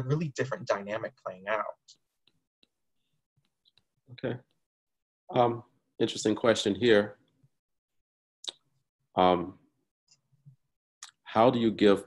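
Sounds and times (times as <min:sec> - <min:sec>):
person speaking: 0:00.0 - 0:02.0.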